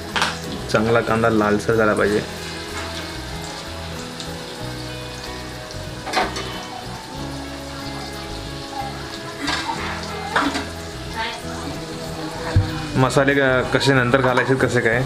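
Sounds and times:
onions sizzling in hot oil: 0.0s - 15.0s.

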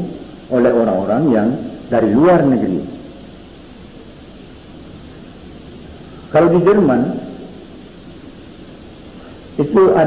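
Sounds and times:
recording hiss: 0.0s - 10.0s
man speaking: 0.5s - 3.0s, 6.3s - 7.5s, 9.6s - 10.0s.

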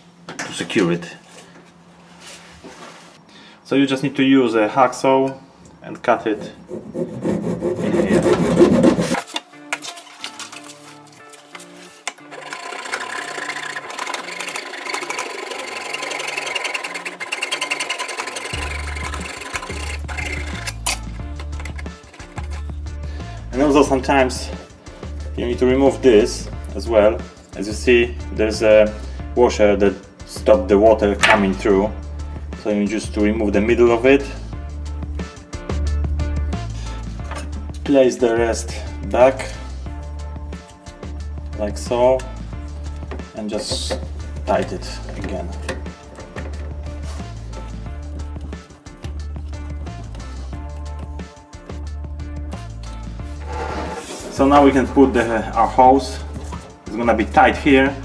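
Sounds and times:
hacksaw cutting plastic: 6.7s - 22.7s
background music with bass line: 18.4s - 58.0s.

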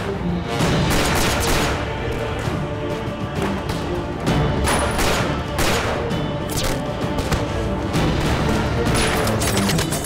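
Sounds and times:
loud background music: 0.0s - 10.0s
gunfire bursts: 0.8s - 1.9s.

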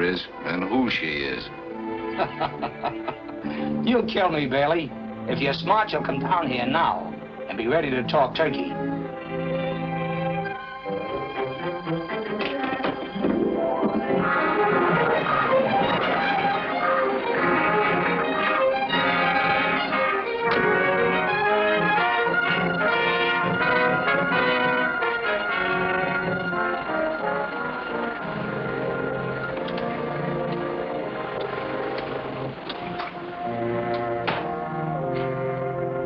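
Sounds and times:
orchestral music with brass: 0.0s - 36.0s.

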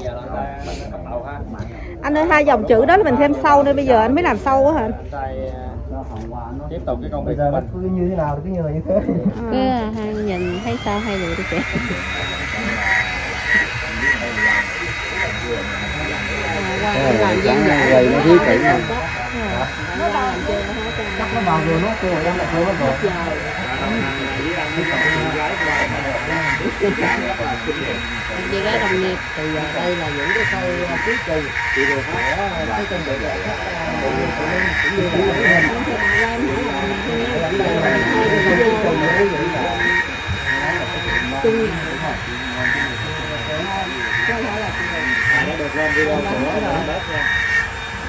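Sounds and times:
engraving tool whining on stone: 9.6s - 48.0s.

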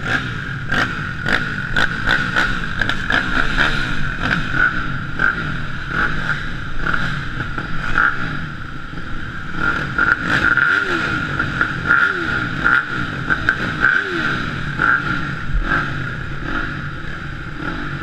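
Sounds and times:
motorcycle engines idling: 0.0s - 18.0s
motorcycle throttle blips: 0.0s - 18.0s.

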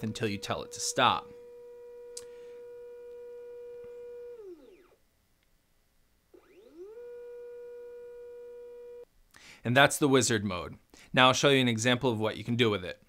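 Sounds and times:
motor whine of camera slider: 1.4s - 5.0s.

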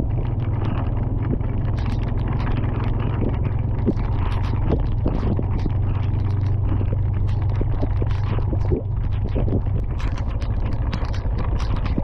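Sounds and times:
steady low rumble: 0.0s - 12.0s.

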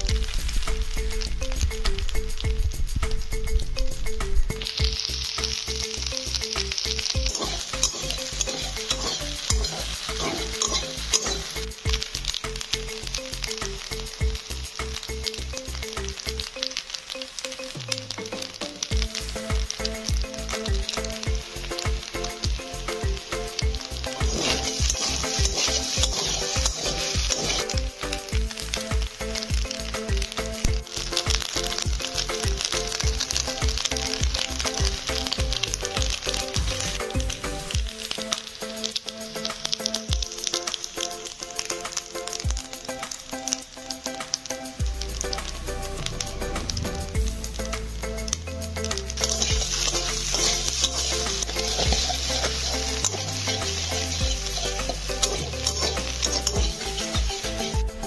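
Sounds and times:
pasta sizzling in a pan: 0.0s - 58.0s
spatula stirring: 6.7s - 12.4s, 22.1s - 28.8s, 48.8s - 58.0s.

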